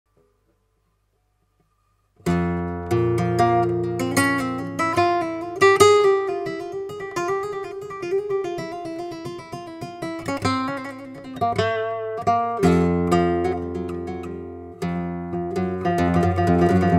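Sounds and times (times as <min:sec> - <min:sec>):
flamenco guitar solo: 0:02.2 - 0:16.9.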